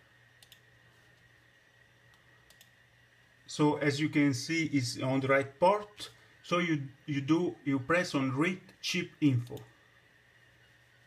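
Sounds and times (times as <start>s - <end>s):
low steady hum: 0.0s - 11.0s
computer mouse clicks: 0.4s - 0.7s, 2.1s - 2.8s.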